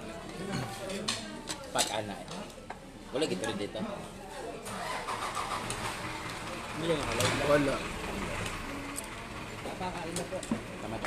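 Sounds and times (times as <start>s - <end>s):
voices: 0.0s - 11.0s
vehicle engine running: 5.2s - 11.0s.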